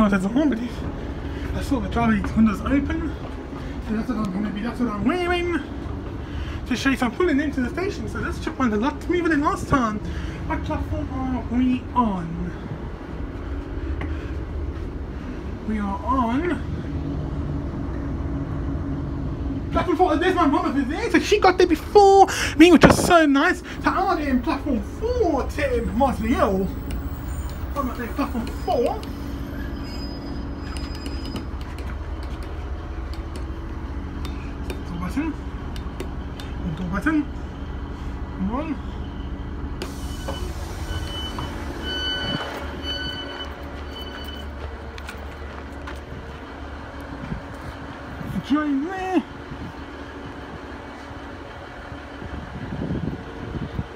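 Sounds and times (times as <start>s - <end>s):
train engine hum and rumble: 0.0s - 53.9s
train doors opening: 24.0s - 33.6s, 39.1s - 45.5s
door warning beeps: 39.1s - 44.6s.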